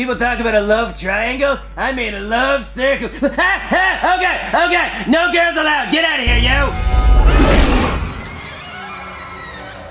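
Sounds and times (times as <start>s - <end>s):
deep rumble: 6.3s - 8.4s
music: 6.3s - 9.9s.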